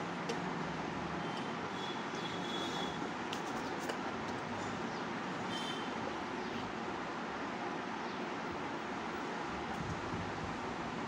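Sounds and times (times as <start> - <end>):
steady hiss and rumble: 0.0 - 11.0.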